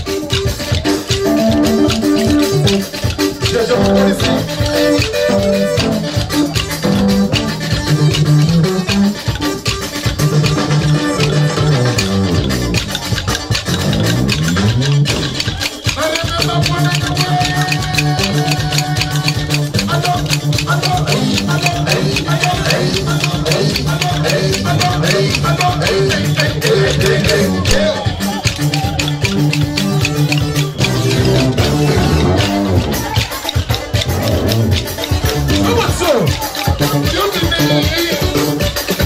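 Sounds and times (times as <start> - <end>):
amplified band music: 0.0 - 39.0
bamboo sticks clacking: 0.2 - 39.0.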